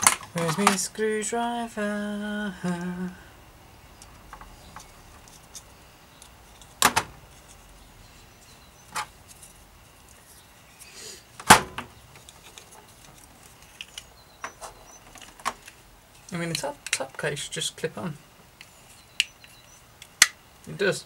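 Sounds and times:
plastic parts clicking on metal bench: 0.0s - 0.9s.

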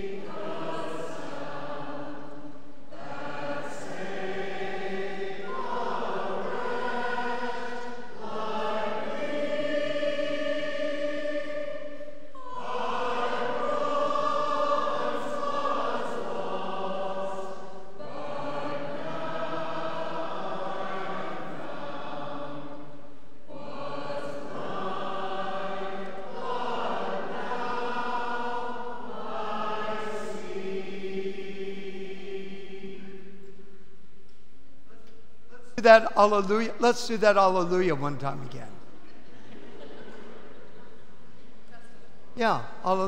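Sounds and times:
church choir singing a hymn: 0.0s - 34.2s, 35.4s - 43.0s.

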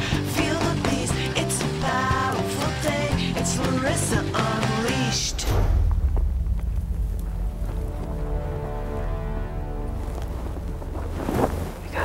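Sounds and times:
music: 0.0s - 5.9s, 7.0s - 12.0s.

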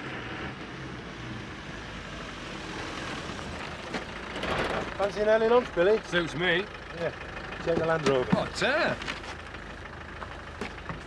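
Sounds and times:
diesel engine idling: 1.6s - 11.0s.

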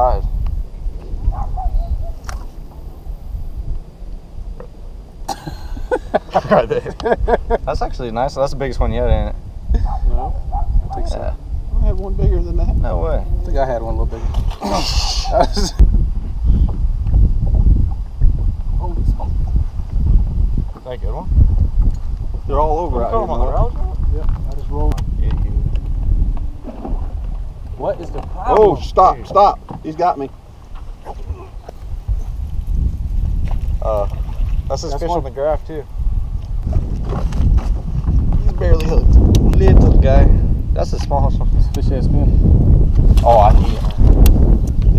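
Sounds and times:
wind buffeting microphone: 0.0s - 44.9s.

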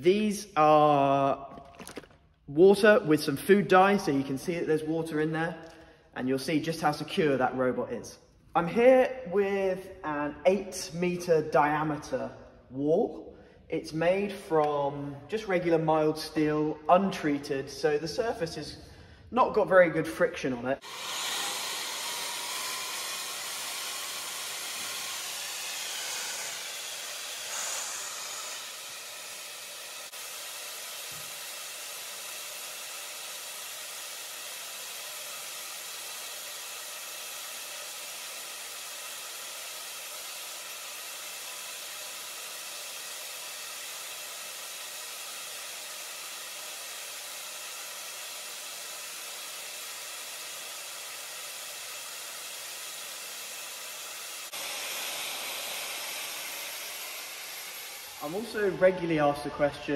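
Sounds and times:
suction fan hissing and whining: 20.8s - 59.8s.

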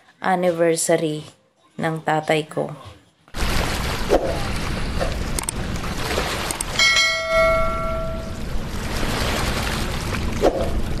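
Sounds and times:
rushing water: 3.4s - 11.0s
bell-like notification chime: 6.8s - 8.4s.

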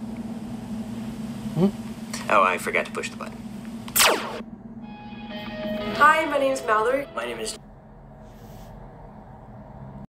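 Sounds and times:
downward sweeping zap: 4.0s - 4.4s
held musical notes: 4.8s - 7.6s.

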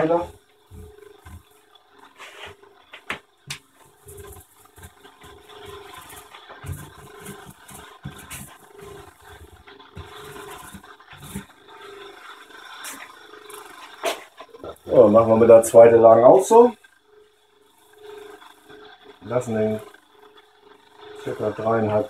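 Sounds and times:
hand roller rasping on fabric: 2.1s - 2.6s, 3.5s - 11.9s.

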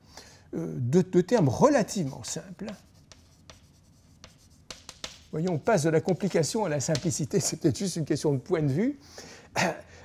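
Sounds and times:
chalk scratching on blackboard: 1.8s - 7.2s
chalk tapping on blackboard: 1.9s - 7.5s.

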